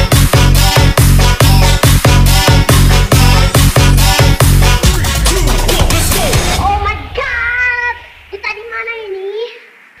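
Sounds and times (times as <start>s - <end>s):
low bass drone: 0.0s - 8.4s
high-pitched vocal sample: 1.6s - 9.7s.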